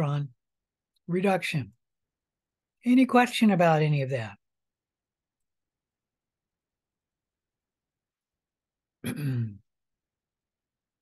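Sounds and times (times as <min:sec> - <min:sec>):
man clearing throat: 0:09.0 - 0:09.6.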